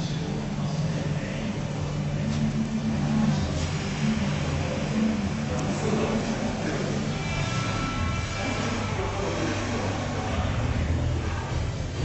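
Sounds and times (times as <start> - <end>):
low indoor room rumble: 0.0 - 12.0.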